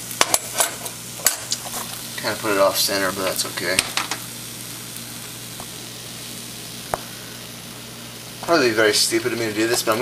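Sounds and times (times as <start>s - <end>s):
pancake sizzling in a pan: 0.0s - 10.0s.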